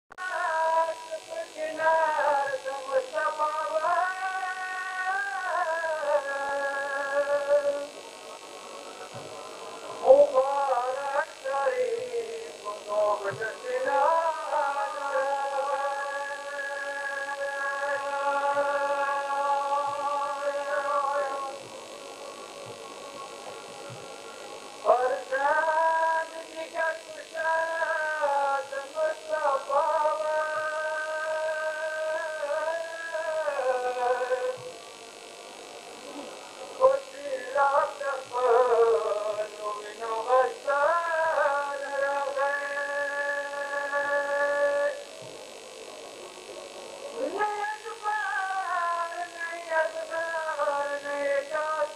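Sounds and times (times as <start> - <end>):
man chanting: 0.2 - 7.9, 9.9 - 21.6, 24.8 - 34.7, 36.1 - 45.0, 47.2 - 51.9
electrical mains hum: 0.2 - 51.9
faint hiss: 0.2 - 51.9.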